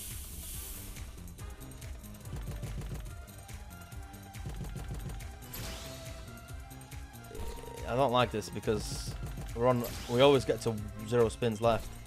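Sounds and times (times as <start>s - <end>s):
slot machine music and effects: 0.8s - 12.0s.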